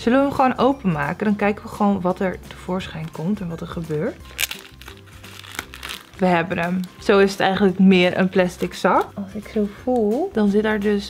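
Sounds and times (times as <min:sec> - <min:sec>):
plastic packaging ripping: 0:04.2 - 0:06.2
plastic packaging crinkling: 0:04.2 - 0:07.0.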